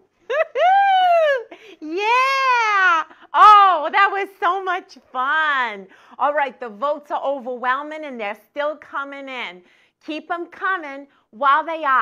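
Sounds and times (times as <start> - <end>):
woman whooping: 0.3 - 3.1.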